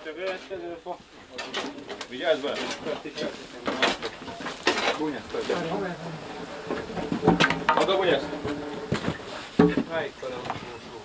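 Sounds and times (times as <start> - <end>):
men talking: 0.0 - 11.0
sharp knocks and clatters: 1.3 - 10.8.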